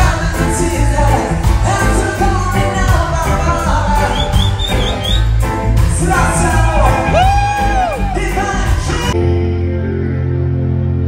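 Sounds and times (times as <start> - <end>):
live reggae band playing: 0.0 - 11.0.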